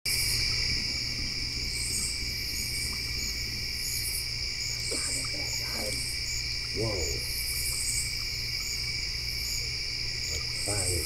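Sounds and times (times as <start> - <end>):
crickets trilling: 0.1 - 11.0
soft pulsing insect call: 0.1 - 11.0.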